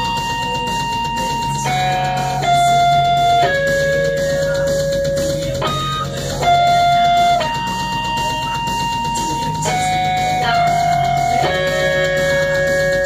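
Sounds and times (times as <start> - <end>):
electric guitar lead notes: 0.0 - 13.0.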